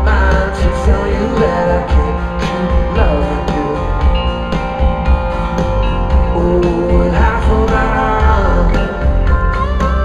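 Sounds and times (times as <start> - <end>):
lead vocal: 0.0 - 10.0
live pop-rock band: 0.0 - 10.0.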